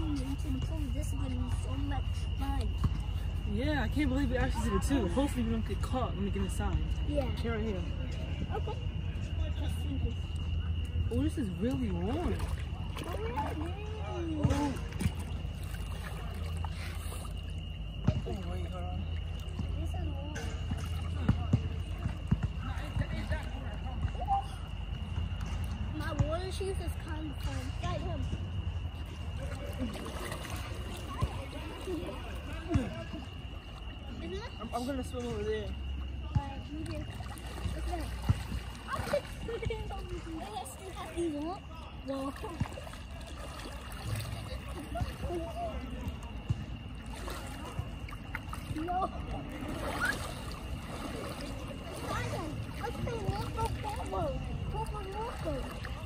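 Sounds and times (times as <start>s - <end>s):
steady low hum: 0.0s - 56.0s
water sloshing in a pool: 0.0s - 56.0s
short splashes: 9.9s - 56.0s.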